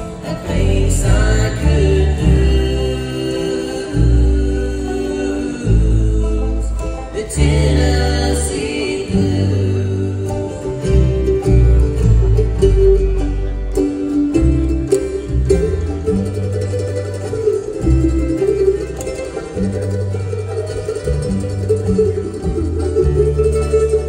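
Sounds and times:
acoustic guitar: 0:00.0 - 0:24.0
banjo: 0:00.0 - 0:24.0
fiddle: 0:00.0 - 0:24.0
picked mandolin: 0:00.0 - 0:24.0
upright bass notes: 0:00.0 - 0:24.0.

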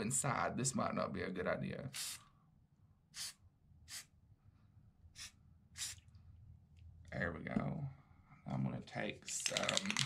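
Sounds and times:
spray can hissing: 0:03.2 - 0:04.1, 0:05.2 - 0:06.0.

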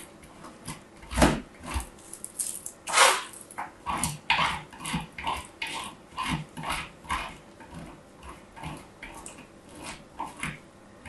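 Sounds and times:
metal cutter crunching into soap: 0:00.6 - 0:05.9.

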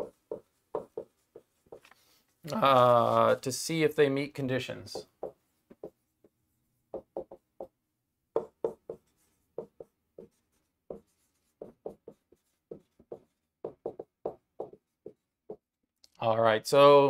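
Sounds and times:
marker writing on whiteboard: 0:00.0 - 0:02.2, 0:05.0 - 0:15.8.

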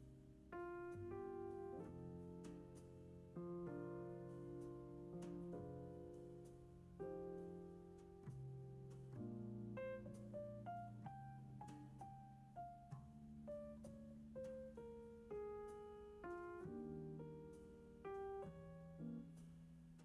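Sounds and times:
soft piano music: 0:00.0 - 0:20.0.

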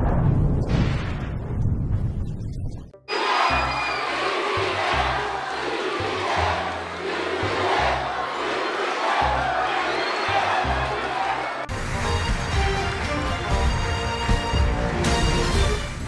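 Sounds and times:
crowd cheering and shouting: 0:03.1 - 0:13.7.

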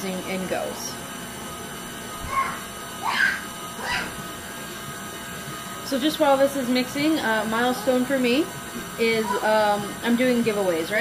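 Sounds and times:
stand mixer kneading dough: 0:00.0 - 0:11.0.

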